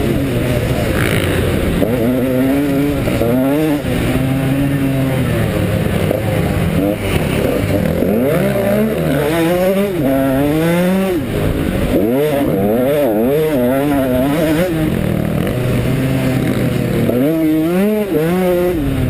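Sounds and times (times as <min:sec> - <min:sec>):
motocross engine revving: 0:00.0 - 0:19.0.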